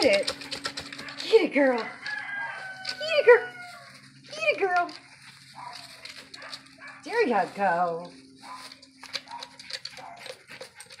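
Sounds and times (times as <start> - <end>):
rustles and scrapes in straw: 3.6 - 10.5
dogs whining: 8.4 - 11.0.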